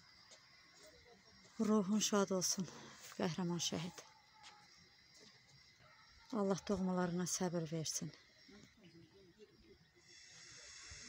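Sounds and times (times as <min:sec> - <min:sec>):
thin high hiss: 0:10.1 - 0:11.0.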